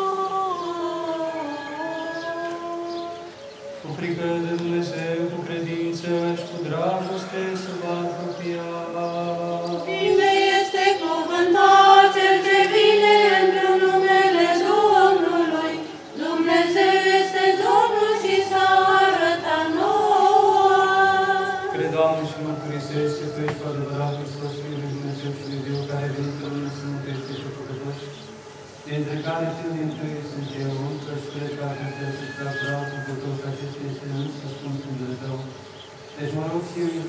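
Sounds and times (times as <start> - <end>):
choir singing sustained notes: 0.0 - 37.0
man chanting low note: 3.8 - 9.9, 21.7 - 35.6, 36.2 - 37.0.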